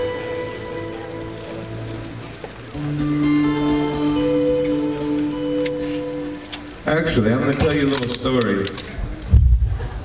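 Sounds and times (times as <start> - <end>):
acoustic guitar notes ringing: 0.0 - 7.1.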